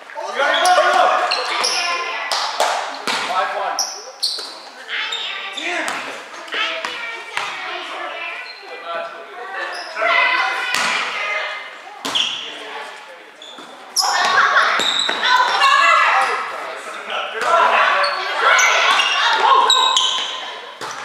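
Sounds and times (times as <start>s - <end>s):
players shouting in a gym: 0.0s - 8.8s, 9.6s - 12.7s, 13.4s - 21.0s.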